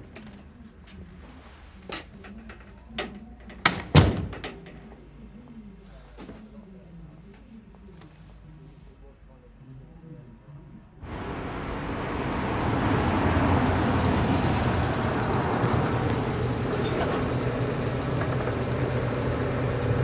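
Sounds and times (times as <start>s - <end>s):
car engine running: 11.0s - 20.0s
street traffic: 11.0s - 20.0s.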